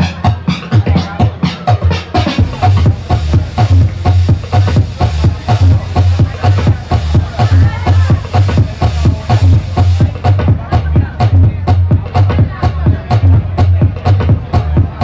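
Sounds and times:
electronic dance music: 0:00.0 - 0:15.0.

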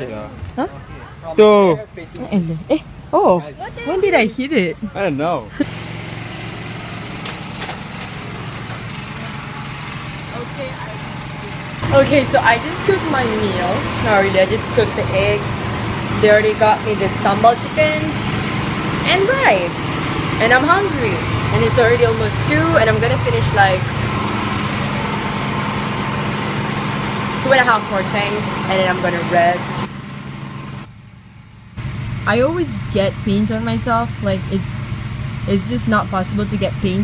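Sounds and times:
small engine humming: 0:05.0 - 0:37.0.

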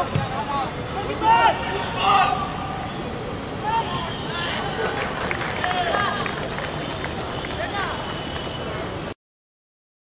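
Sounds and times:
open-air background noise: 0:00.0 - 0:09.2
distant shouts and calls: 0:00.3 - 0:06.4.

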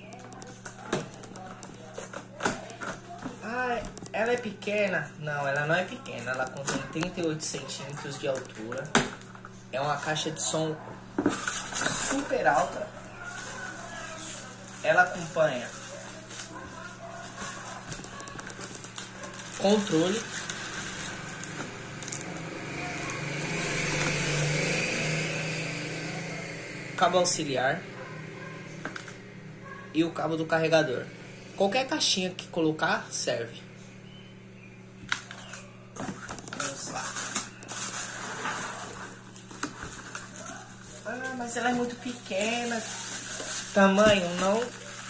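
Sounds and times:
cardboard rustling: 0:11.2 - 0:21.8, 0:35.2 - 0:45.0
plastic packaging crinkling: 0:11.3 - 0:22.4, 0:35.0 - 0:45.0.

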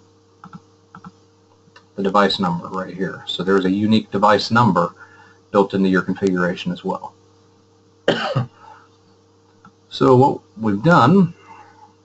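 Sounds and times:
man coughing: 0:08.1 - 0:08.7.

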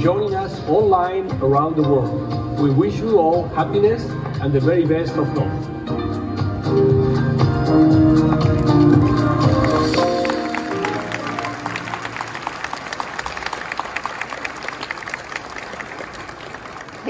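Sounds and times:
presentation music held notes: 0:00.0 - 0:13.5
audience applauding: 0:08.4 - 0:17.0.

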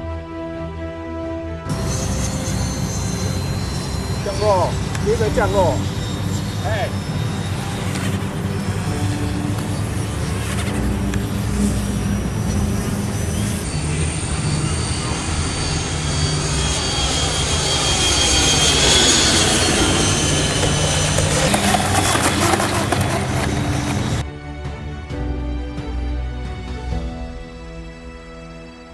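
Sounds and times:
model jet engine running: 0:01.7 - 0:24.2
people talking: 0:04.2 - 0:05.8, 0:06.6 - 0:07.0.

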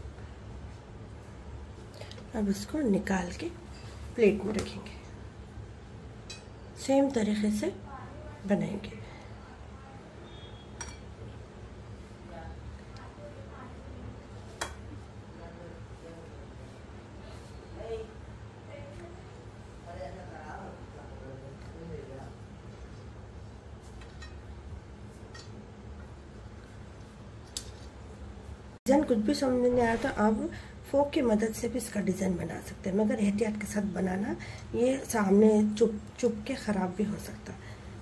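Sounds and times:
low background hum: 0:00.0 - 0:38.0.

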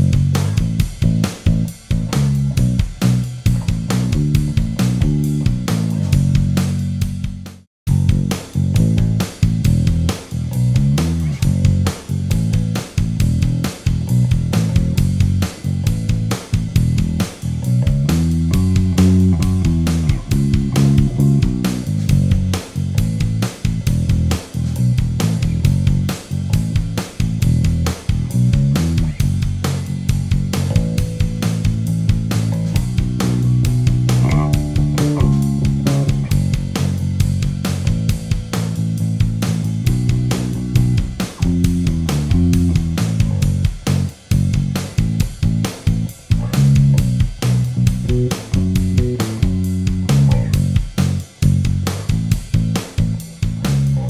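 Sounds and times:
plucked bass guitar line: 0:00.0 - 0:54.0.

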